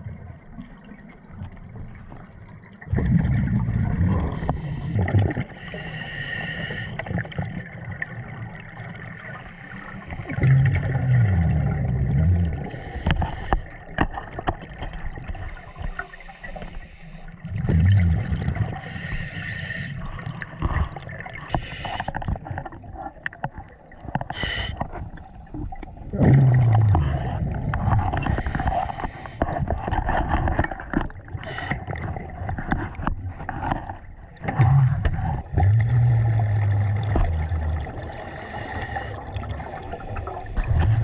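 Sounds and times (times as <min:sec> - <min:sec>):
bubbling exhalations: 0:02.9 - 0:05.8, 0:26.0 - 0:32.2, 0:34.4 - 0:41.0
scuba regulator inhalation hiss: 0:05.6 - 0:07.0, 0:12.7 - 0:13.6, 0:18.8 - 0:20.0, 0:21.5 - 0:22.2, 0:24.4 - 0:24.8, 0:28.3 - 0:29.4, 0:31.4 - 0:31.8, 0:38.0 - 0:39.2.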